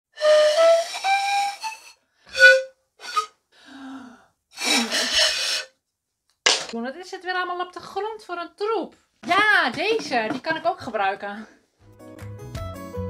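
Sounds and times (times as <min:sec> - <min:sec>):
breathy pan flute: 0:00.1 - 0:05.7.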